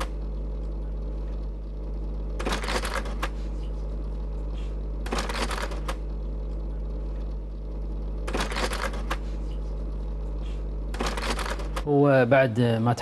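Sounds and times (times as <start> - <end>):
steady low hum: 0.0 - 13.0
slide projector clicking and clattering: 2.3 - 7.4, 8.2 - 11.9.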